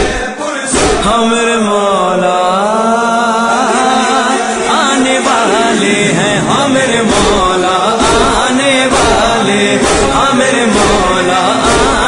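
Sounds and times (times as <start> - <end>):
person singing devotional chant: 0.0 - 12.0
low thuds: 5.6 - 12.0.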